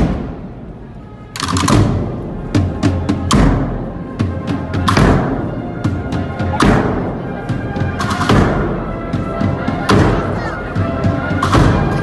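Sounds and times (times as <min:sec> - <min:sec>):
marching band playing: 0:00.0 - 0:12.0.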